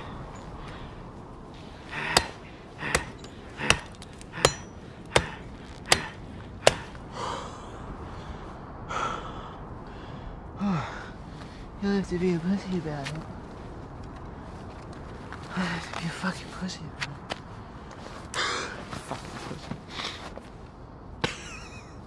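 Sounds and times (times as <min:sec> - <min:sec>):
man breathing heavily: 0:00.0 - 0:11.8, 0:17.6 - 0:19.0
axe chopping into wood: 0:02.0 - 0:07.0.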